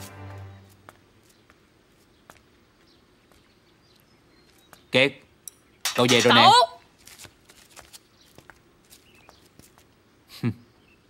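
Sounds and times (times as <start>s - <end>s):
man speaking: 5.9s - 6.6s.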